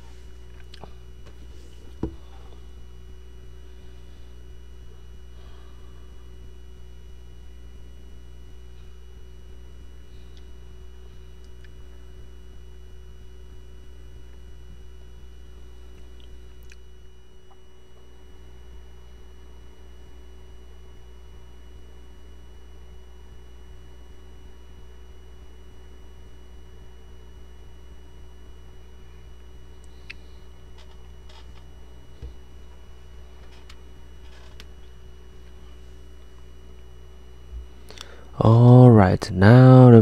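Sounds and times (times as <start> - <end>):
microphone low hum: 0.0 - 40.0.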